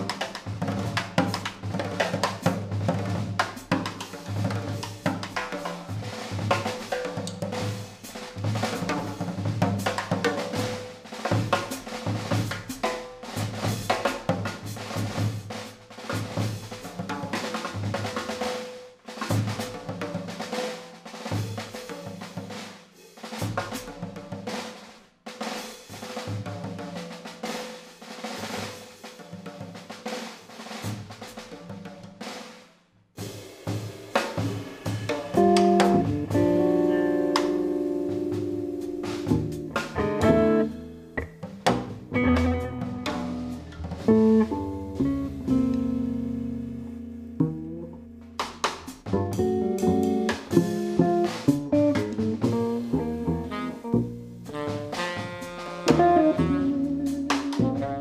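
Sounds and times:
jazz drum kit: 0.0 - 58.0.

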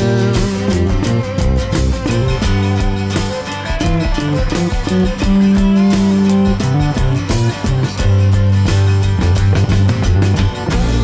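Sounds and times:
drum beat: 0.0 - 11.0
guitar: 0.0 - 11.0
held low bass notes: 0.0 - 11.0.

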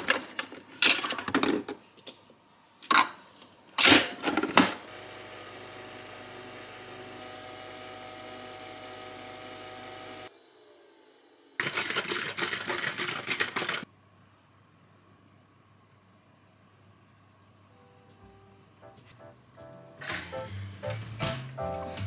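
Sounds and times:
coffee machine humming: 4.4 - 10.3.

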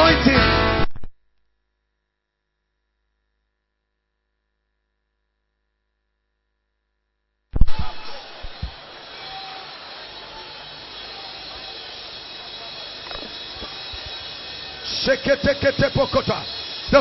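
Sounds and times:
congregation praying aloud: 7.7 - 17.0.

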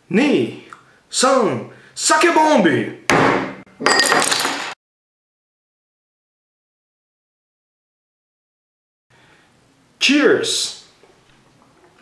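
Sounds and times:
hands slamming on tabletop: 3.1 - 3.6
glass rattling and clinking: 3.8 - 4.7.

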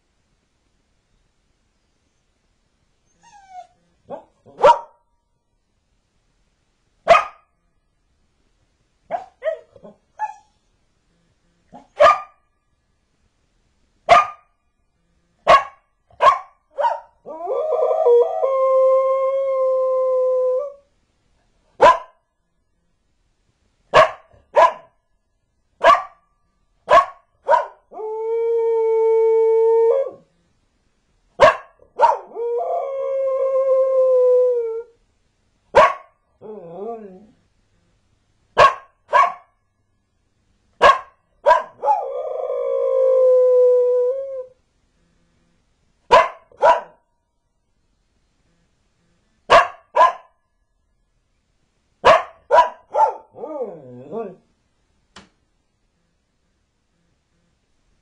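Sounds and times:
dog barking: 4.1 - 5.0, 7.1 - 7.5, 9.1 - 10.5, 11.7 - 12.4, 14.1 - 14.5, 15.4 - 17.2, 21.8 - 22.2, 23.9 - 25.0, 25.8 - 26.2, 26.9 - 27.8, 31.4 - 32.3, 35.8 - 36.2, 38.6 - 39.5, 40.8 - 42.0, 46.1 - 47.0, 49.5 - 50.3, 52.0 - 53.4
dog yipping: 9.1 - 10.6, 38.6 - 39.4, 46.1 - 47.0, 49.5 - 50.3, 52.0 - 53.2
dog howling: 36.4 - 37.4.

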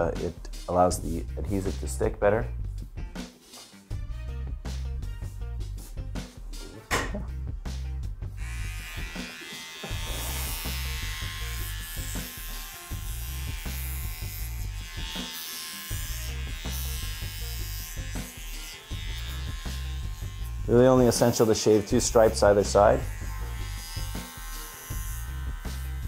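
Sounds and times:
electric shaver buzzing: 8.3 - 26.0.

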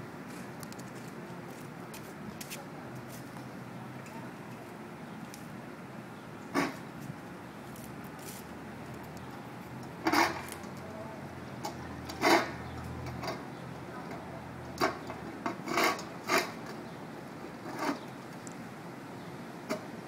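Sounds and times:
low background noise: 0.0 - 20.0.

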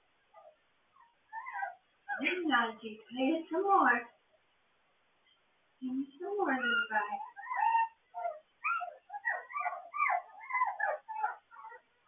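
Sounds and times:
puppy whimpering: 0.3 - 2.4, 6.4 - 12.0.

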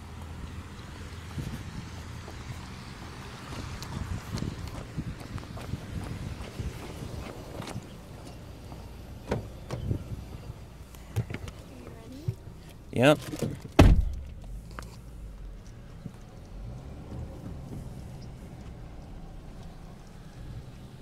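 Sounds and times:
car engine and road hum: 0.0 - 21.0
knocks and bumps: 13.3 - 14.5.

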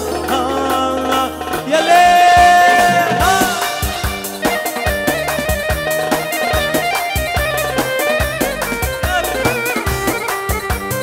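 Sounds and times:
band playing dance music: 0.0 - 11.0
quick steady drum beat: 1.6 - 11.0
wavering melody line: 1.7 - 9.5.

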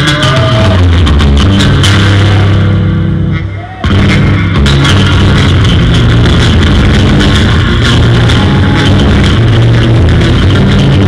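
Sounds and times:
electric bass guitar: 0.0 - 11.0.

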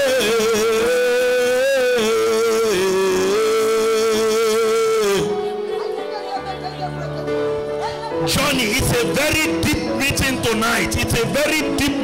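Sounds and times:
man singing a long high note: 0.0 - 5.5.

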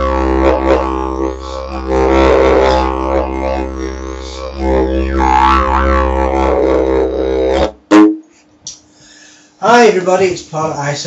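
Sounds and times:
didgeridoo loud blast: 0.0 - 8.4
didgeridoo low drone: 0.0 - 8.4.

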